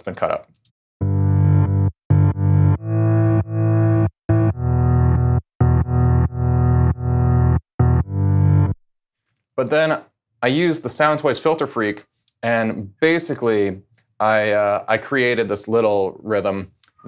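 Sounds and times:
reversed piano chords: 0:01.0 - 0:08.8.

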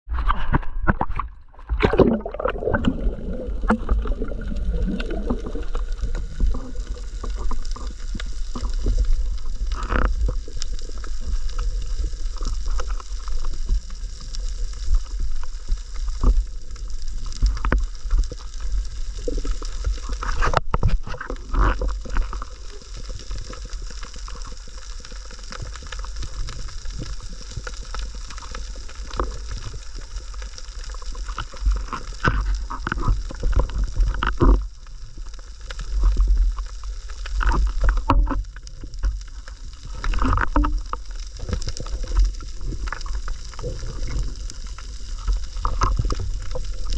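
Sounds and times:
underwater gurgles: 0:00.1 - 0:46.9
underwater low rumble: 0:00.1 - 0:46.9.

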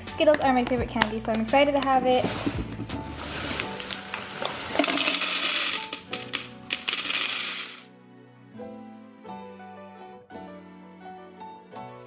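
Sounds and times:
candies rattling into plastic canister: 0:02.1 - 0:07.9.

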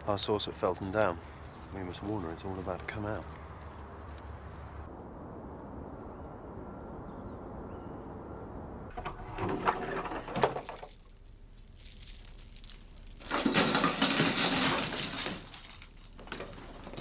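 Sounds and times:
low steady rumble: 0:04.8 - 0:13.8
metal chain rattling: 0:09.0 - 0:17.0.

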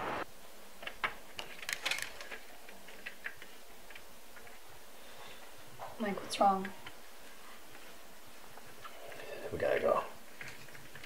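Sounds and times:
steady outdoor hiss: 0:00.0 - 0:11.0
faint small clicks and rustles: 0:00.8 - 0:11.0.

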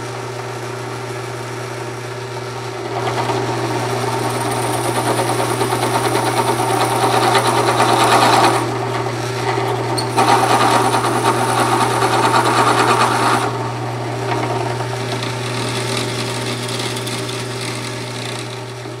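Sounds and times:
drill press motor hum: 0:00.0 - 0:19.0
drill bit boring into wood: 0:02.7 - 0:19.0.

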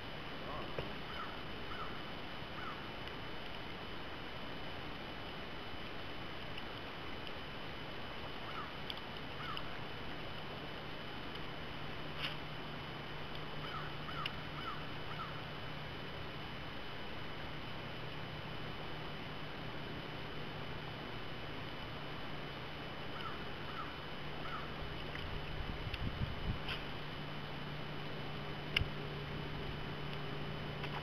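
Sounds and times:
even hiss: 0:00.0 - 0:31.0
low hum: 0:00.0 - 0:31.0
faint clicks: 0:06.4 - 0:07.5, 0:08.3 - 0:10.5, 0:28.7 - 0:29.0.

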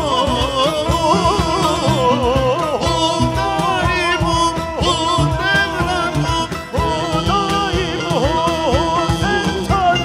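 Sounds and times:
man singing a hymn: 0:00.0 - 0:10.0
oud cello and percussion ensemble: 0:00.0 - 0:10.0.

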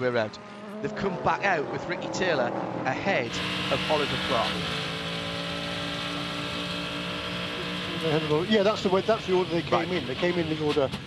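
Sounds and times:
racing engine at speed: 0:00.0 - 0:11.0
road noise: 0:00.0 - 0:11.0.

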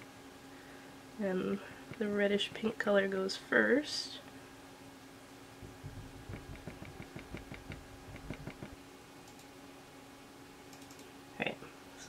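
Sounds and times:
steady low hum: 0:00.0 - 0:12.0
stick scraping and tapping palette: 0:06.2 - 0:08.8.

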